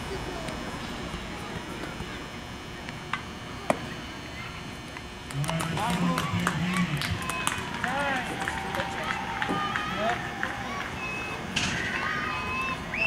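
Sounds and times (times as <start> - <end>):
people shouting and calling out: 5.7 - 13.0.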